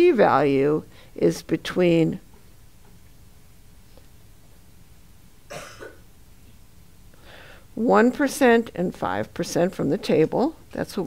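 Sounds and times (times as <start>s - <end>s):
person coughing: 5.5s - 6.0s.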